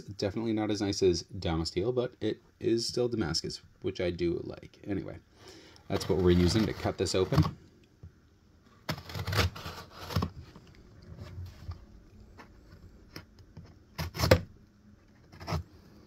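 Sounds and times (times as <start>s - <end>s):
knife cutting duct tape: 8.9s - 10.3s, 14.0s - 14.5s.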